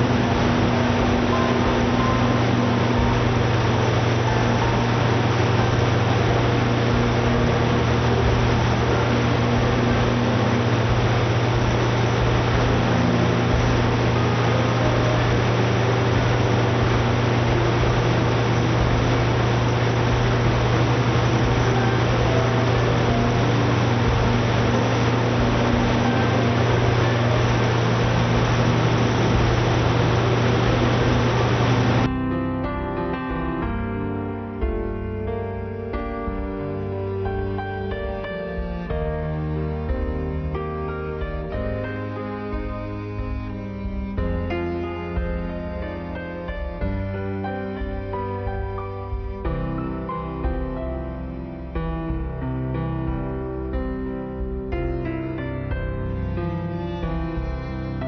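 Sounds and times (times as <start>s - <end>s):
gas engine generator droning: 0.0s - 32.1s.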